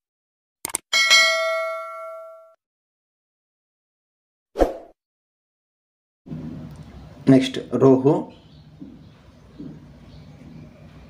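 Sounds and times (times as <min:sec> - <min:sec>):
notification bell ding: 0:01.0 - 0:02.6.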